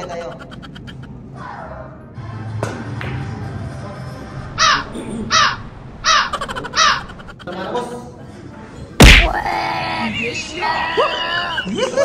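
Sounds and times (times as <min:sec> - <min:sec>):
crow cawing: 0:04.6 - 0:07.4.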